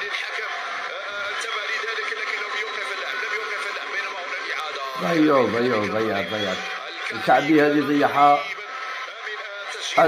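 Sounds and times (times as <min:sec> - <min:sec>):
tinny tv commentary: 0:00.0 - 0:10.0.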